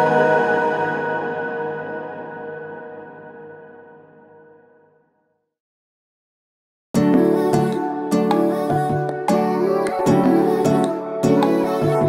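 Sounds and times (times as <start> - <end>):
sustained ringing chord: 0.0 - 4.9.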